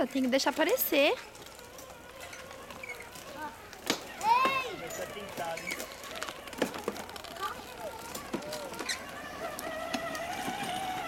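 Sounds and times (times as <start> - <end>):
faint buzzing hum: 0.0 - 11.0.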